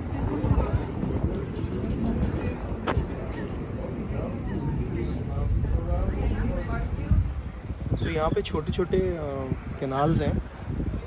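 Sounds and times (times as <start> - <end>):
passers-by talking: 0.0 - 11.0
wind rumbling on microphone: 0.0 - 11.0.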